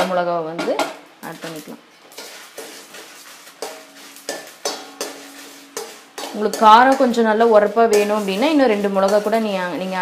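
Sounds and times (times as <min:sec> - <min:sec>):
spoon stirring dry seeds in pan: 0:01.2 - 0:10.0
spoon clinking on pan: 0:03.6 - 0:07.2.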